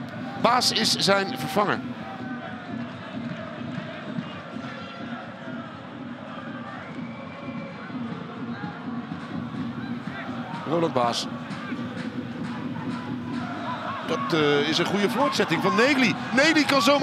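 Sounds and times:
faint voices and shouts: 4.0 - 17.0.

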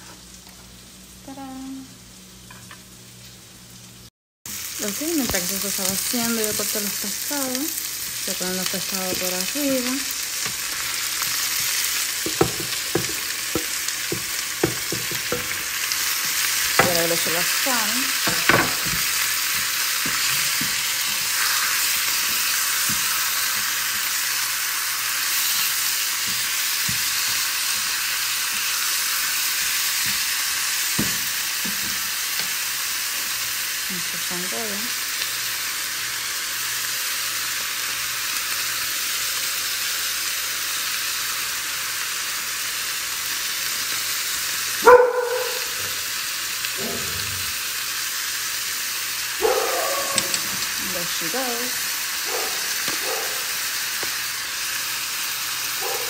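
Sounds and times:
fish and vegetables sizzling in a pan: 0.0 - 56.0
spatula knocking against pan: 12.3 - 15.6.

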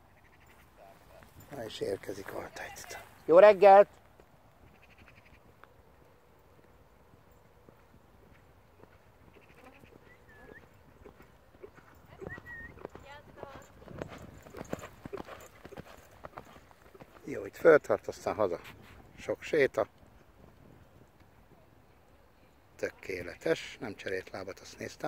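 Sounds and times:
horse galloping on sand: 5.4 - 19.2.

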